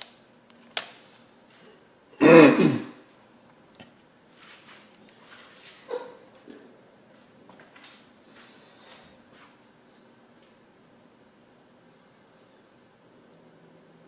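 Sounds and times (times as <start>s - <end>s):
man clearing throat: 2.2s - 3.0s
faint clicks and rustles: 3.1s - 10.7s.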